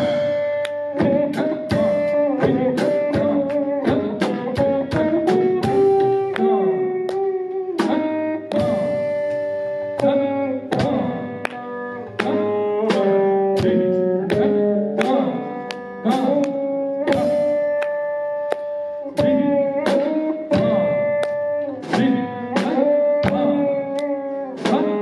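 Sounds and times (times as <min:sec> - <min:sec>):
veena plucked notes: 0:00.0 - 0:25.0.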